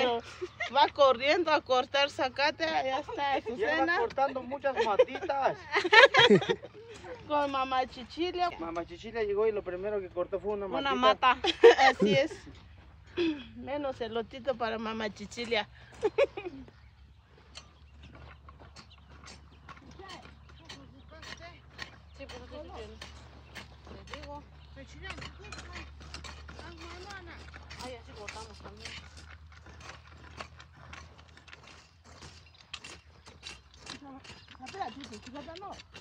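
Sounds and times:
hoes scraping dry soil: 0.0s - 36.0s.

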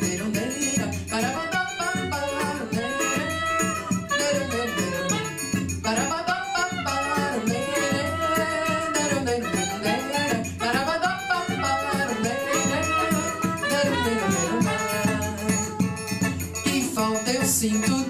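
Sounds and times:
woman singing: 0.0s - 16.0s
hand percussion with shaker: 0.0s - 18.0s
saxophone melody: 0.0s - 18.0s
strummed small guitar: 0.0s - 18.0s.

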